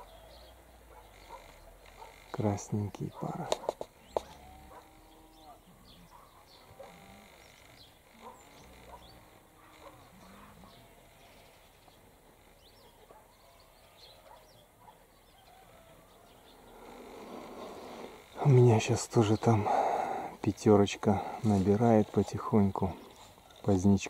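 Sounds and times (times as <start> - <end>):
lower longer bird calls: 0.0 - 2.4, 3.2 - 22.0
small birds chirping: 0.0 - 24.0.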